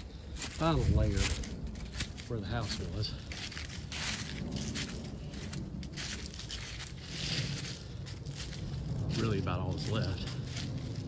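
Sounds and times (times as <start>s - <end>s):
footsteps crunching dry leaves: 0.0s - 11.0s.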